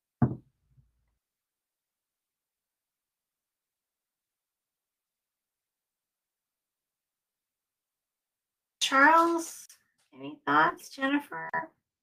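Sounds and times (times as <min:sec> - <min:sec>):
short knock: 0:00.2 - 0:00.5.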